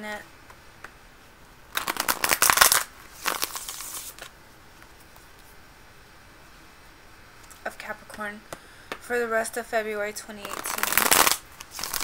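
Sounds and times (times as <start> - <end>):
cards being shuffled: 1.7 - 4.3, 10.4 - 12.0.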